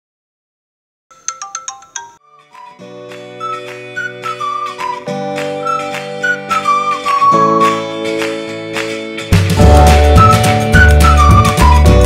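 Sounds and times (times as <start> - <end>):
chiming phone ringtone: 1.1 - 2.2.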